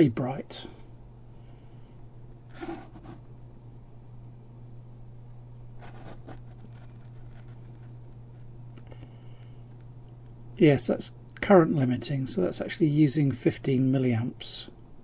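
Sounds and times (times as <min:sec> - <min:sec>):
steady low hum: 0:00.0 - 0:15.0
wires rustling: 0:05.8 - 0:10.4.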